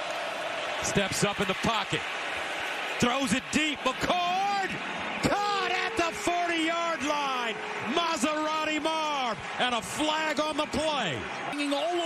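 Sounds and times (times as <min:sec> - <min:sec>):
man commentating: 0:00.8 - 0:02.1, 0:03.0 - 0:12.0.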